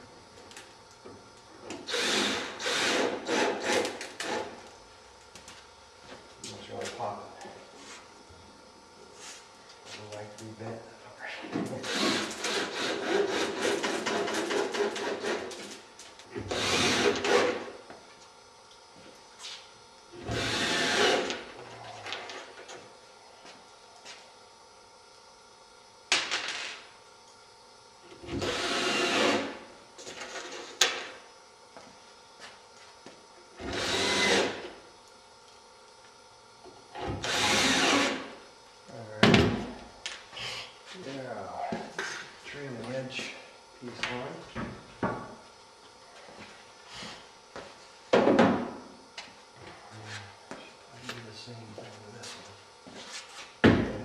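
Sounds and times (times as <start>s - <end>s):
cordless drill driving screws: 1.9s - 4.5s, 11.8s - 14.1s, 16.5s - 17.6s, 20.2s - 21.4s, 28.4s - 29.5s, 33.6s - 34.6s, 37.2s - 38.3s.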